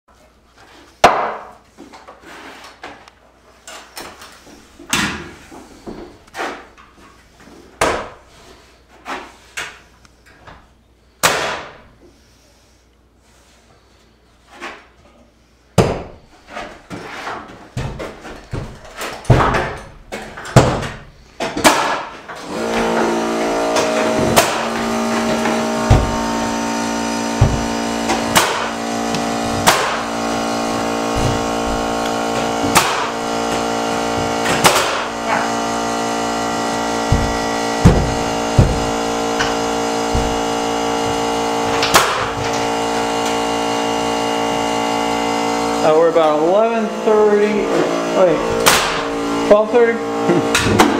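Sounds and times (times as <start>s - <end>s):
air compressor humming: 17.7s - 50.9s
nail gun shots: 21.6s - 22.1s, 23.8s - 24.8s, 27.6s - 28.8s, 29.6s - 30.1s, 32.6s - 33.2s, 34.4s - 35.2s, 41.7s - 42.4s, 48.6s - 49.1s.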